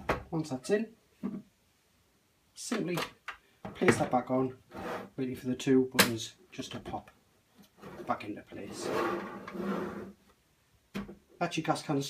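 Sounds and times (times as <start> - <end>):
plastic panel scraping: 7.8 - 10.2.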